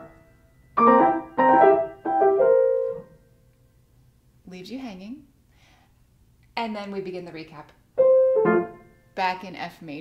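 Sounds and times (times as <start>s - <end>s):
upright piano chords: 0.0s - 3.4s, 8.0s - 9.0s.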